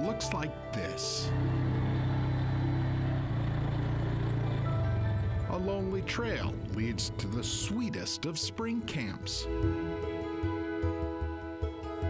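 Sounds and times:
atv engine running: 0.3 - 7.6.

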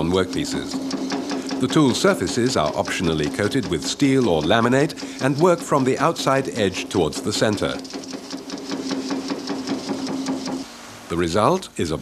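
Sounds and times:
machine hammering sheet metal: 0.0 - 10.7
steady machine hum: 0.0 - 12.0.

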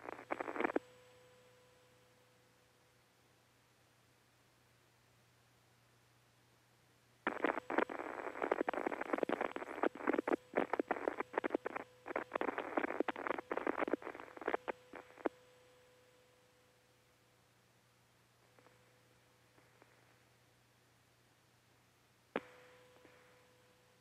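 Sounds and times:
crackling radio static: 0.0 - 1.0, 7.2 - 15.5, 22.3 - 23.4.

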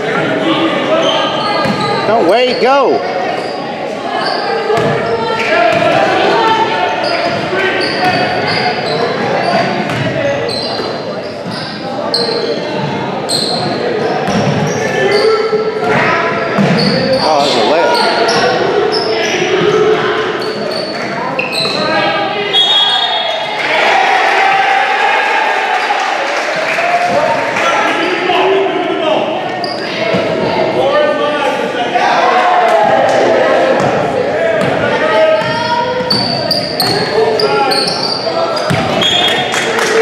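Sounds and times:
sneakers squeaking: 0.0 - 23.6, 29.3 - 30.7, 33.7 - 39.7.

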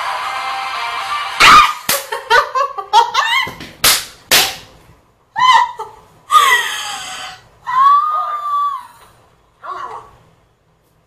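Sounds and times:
woman squealing: 3.2 - 3.6, 5.4 - 9.0.

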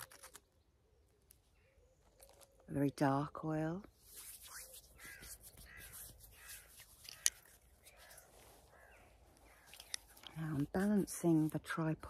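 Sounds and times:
crows cawing: 5.0 - 9.8.

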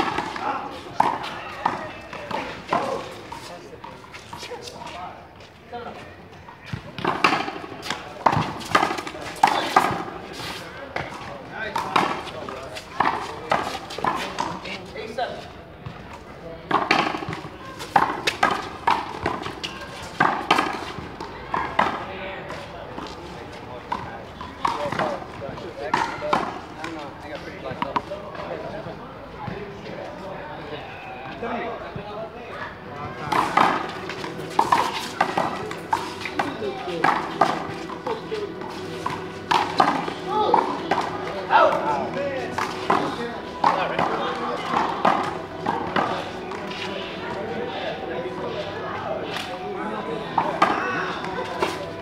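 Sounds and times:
players' voices: 0.0 - 52.0.

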